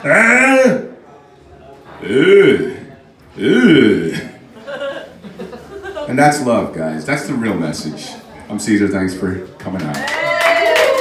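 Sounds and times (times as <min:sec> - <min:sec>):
man's deep drawn-out uhh: 0:02.0 - 0:04.4.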